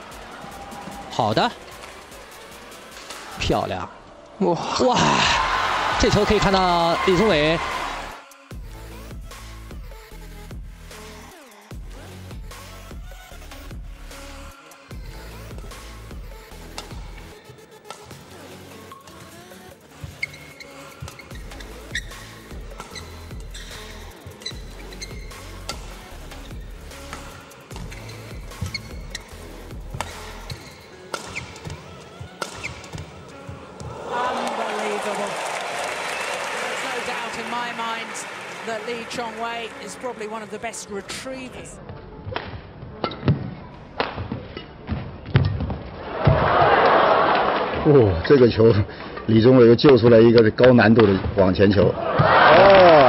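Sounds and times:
crowd cheering: 0.0s - 1.4s, 4.9s - 8.2s, 33.7s - 40.7s, 45.9s - 48.1s, 52.0s - 53.0s
background music: 0.0s - 53.0s
rackets striking shuttlecock: 29.9s - 33.2s.

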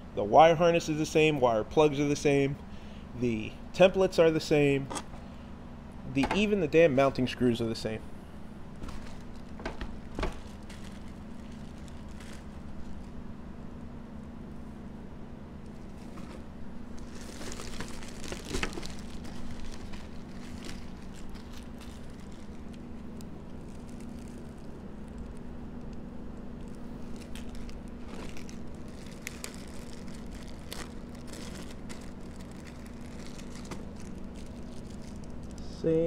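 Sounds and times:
plastic bags crinkling: 8.7s - 13.3s, 15.7s - 35.6s.

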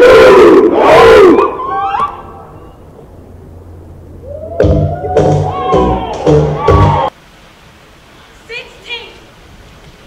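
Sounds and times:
crowd cheering and screaming: 4.2s - 7.1s.

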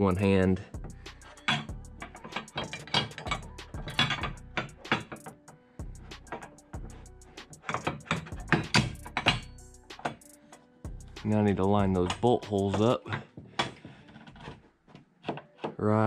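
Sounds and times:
clicks and knocks of metal panel: 7.6s - 10.2s.

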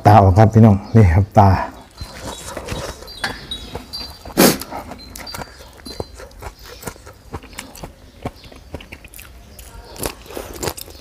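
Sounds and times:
faint eating clicks: 1.9s - 11.0s
man puffing breath: 4.3s - 5.0s.

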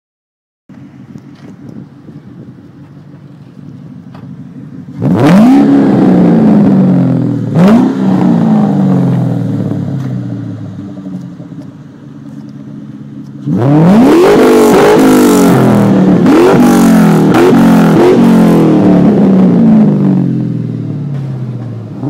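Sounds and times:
car engine idling and revving: 0.7s - 22.0s.

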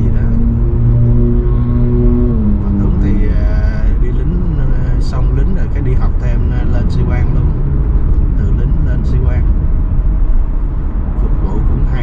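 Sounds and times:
man talking: 0.0s - 0.6s, 2.6s - 7.6s, 8.4s - 9.5s, 11.2s - 12.0s
car road and engine noise: 0.0s - 12.0s.

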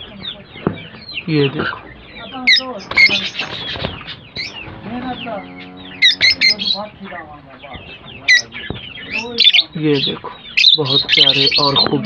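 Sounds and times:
lovebirds chirping and calling: 0.0s - 12.0s.

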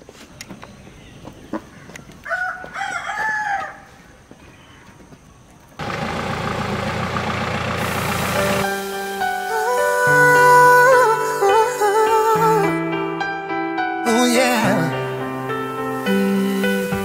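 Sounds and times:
rooster crowing: 2.2s - 4.2s
music: 8.7s - 17.0s.

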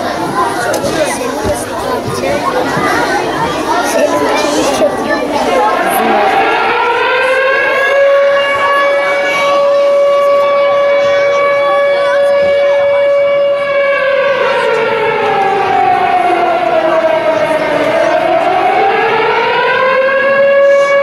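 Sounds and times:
siren: 3.9s - 21.0s.

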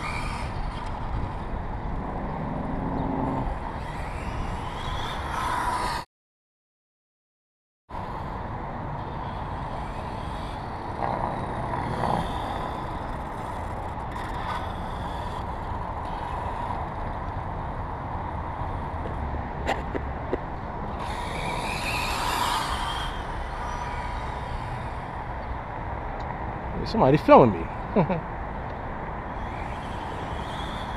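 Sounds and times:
rc car motor whine: 0.0s - 1.6s, 2.4s - 6.0s, 9.0s - 17.3s, 20.9s - 25.5s, 29.2s - 30.9s
tyre noise on asphalt: 0.0s - 6.0s, 9.0s - 26.4s, 28.5s - 30.9s
outdoor rumble: 7.9s - 30.9s.

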